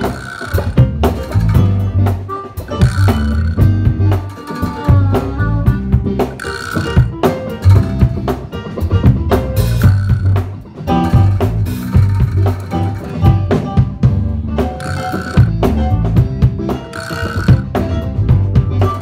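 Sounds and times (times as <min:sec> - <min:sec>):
bass line: 0:00.0 - 0:19.0
drum kit beat: 0:00.0 - 0:19.0
live blues band playing: 0:00.0 - 0:19.0.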